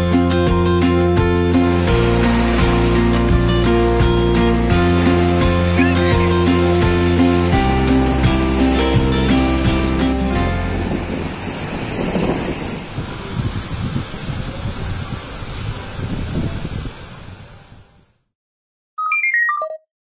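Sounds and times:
background music: 0.0s - 11.6s
surf breaking on sandy beach: 1.4s - 18.1s.

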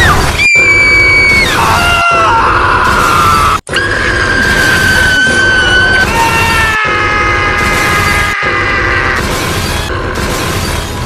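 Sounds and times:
distorted high-pitched screams: 0.0s - 9.9s
heavy noise bed: 0.6s - 11.0s.

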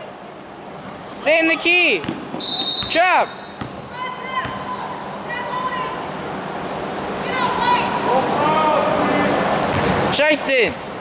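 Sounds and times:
hall background noise: 0.0s - 11.0s
voices calling out in echoing hall: 1.1s - 10.7s.

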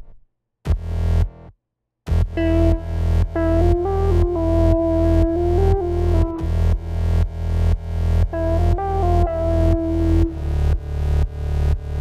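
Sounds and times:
synth bass notes: 2.1s - 12.0s.

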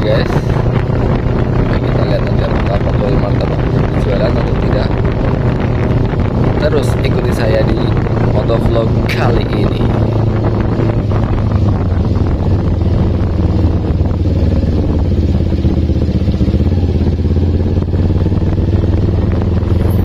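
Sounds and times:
motorcycle engine cruising: 0.0s - 20.0s.

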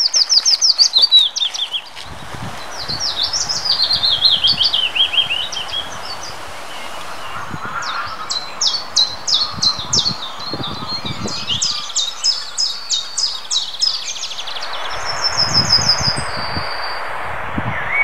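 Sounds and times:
warbler song: 0.0s - 18.0s
wind buffeting microphone: 0.0s - 18.0s.

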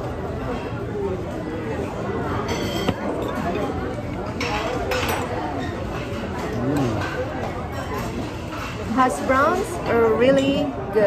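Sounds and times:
restaurant chatter: 0.0s - 11.0s
cutlery clinking on plate: 2.4s - 9.6s.

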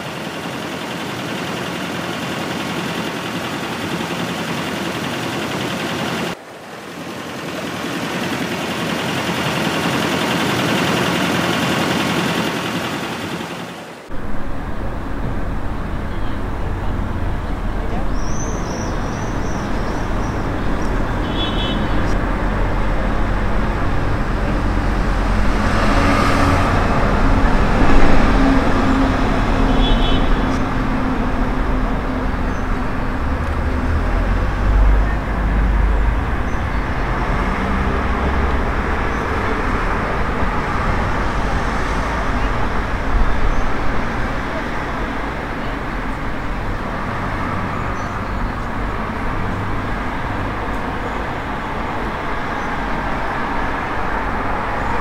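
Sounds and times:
low traffic rumble: 0.0s - 55.0s.

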